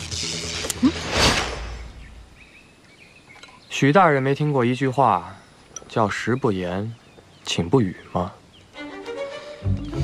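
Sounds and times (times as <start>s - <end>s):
faint bird chirps: 1.7s - 8.8s.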